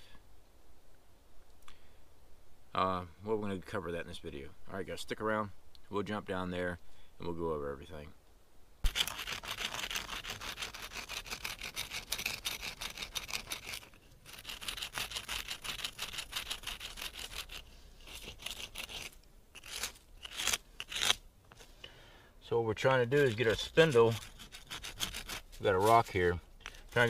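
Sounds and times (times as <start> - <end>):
wooden spindle scraping on rock: 8.8 - 21.7, 22.8 - 27.0.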